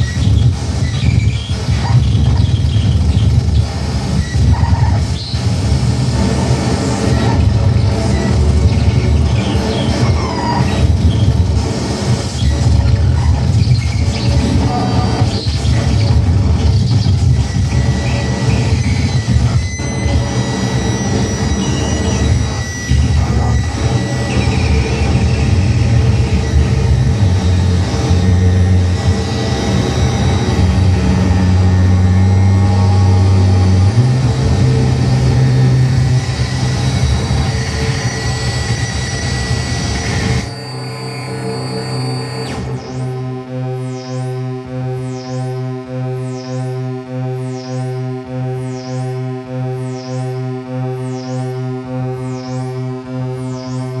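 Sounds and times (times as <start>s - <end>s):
heavy low drone: 0.0s - 54.0s
pitched synth-like tone: 0.0s - 54.0s
steady high tones: 0.0s - 54.0s
wall of distorted noise: 0.0s - 54.0s.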